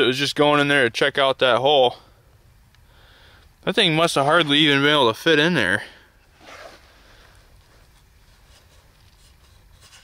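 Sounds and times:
fur rubbing against wood: 6.3s - 10.0s.

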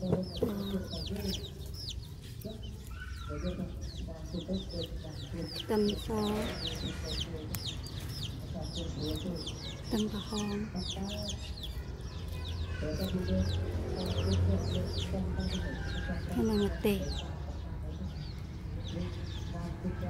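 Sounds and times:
hen clucking: 0.0s - 11.8s
chicks peeping: 0.0s - 20.0s.

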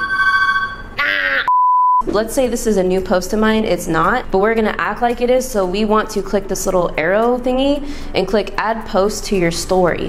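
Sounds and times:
censor bleep: 0.0s - 2.0s
two-note beep tone: 0.0s - 2.1s.

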